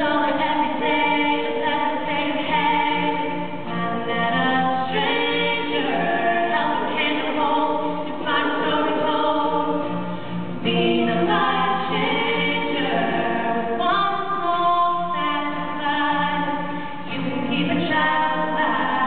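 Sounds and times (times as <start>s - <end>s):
acoustic guitar: 0.0s - 19.0s
women singing in harmony: 0.0s - 19.0s.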